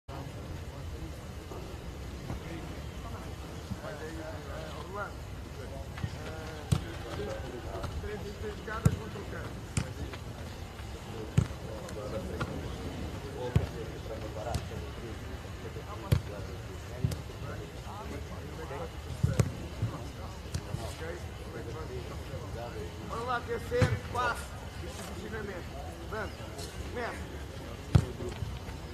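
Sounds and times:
footballs being kicked: 0:06.0 - 0:12.6, 0:16.1 - 0:16.4, 0:19.1 - 0:20.9, 0:23.8 - 0:24.2, 0:27.9 - 0:28.7.

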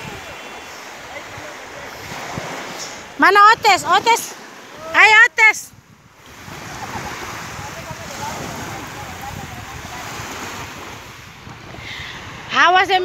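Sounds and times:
waves washing onto pebbles: 0:00.0 - 0:12.6
wind on microphone: 0:00.0 - 0:13.0.

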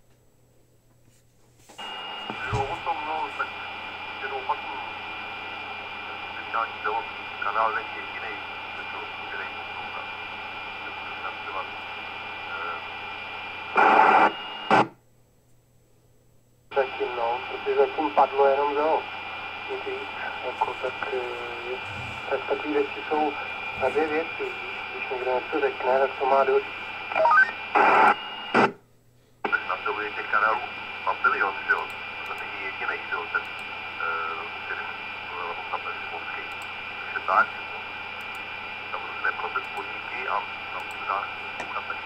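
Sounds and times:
loud burst of radio noise: 0:01.8 - 0:14.9, 0:16.7 - 0:28.7
radio hiss: 0:01.8 - 0:14.9, 0:16.7 - 0:28.7, 0:29.4 - 0:42.0
distorted voice over radio: 0:02.2 - 0:13.0, 0:16.7 - 0:28.7, 0:29.4 - 0:38.0, 0:38.8 - 0:42.0.

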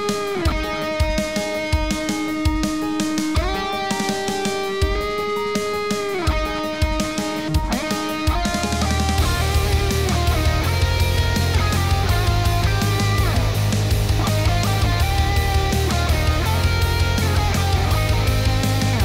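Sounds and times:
electric guitar lead line: 0:00.0 - 0:19.0
heavy low rhythm: 0:00.0 - 0:19.0
low thumps: 0:00.4 - 0:19.0.

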